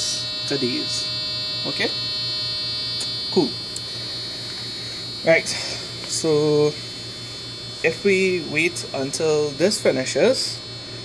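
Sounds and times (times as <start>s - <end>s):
electronic alarm buzz: 0.0s - 10.9s.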